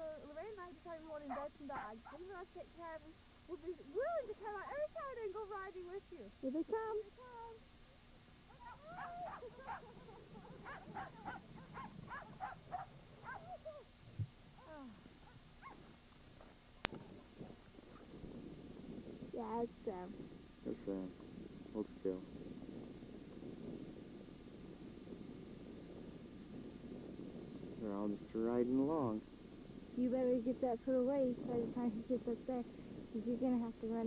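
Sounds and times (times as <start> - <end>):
sled dogs yelping and howling: 1.3 - 2.2, 8.5 - 13.9, 15.2 - 16.6.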